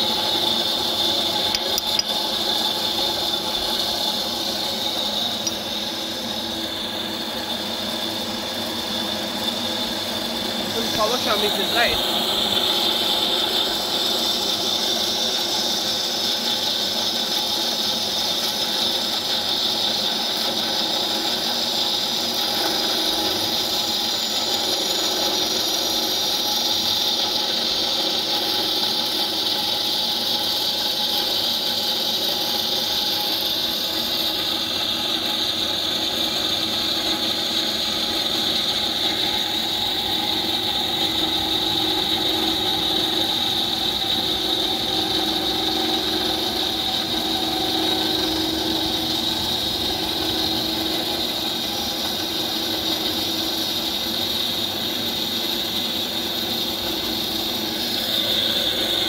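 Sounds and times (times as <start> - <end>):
band saw cutting steel pipe: 0.0 - 59.0.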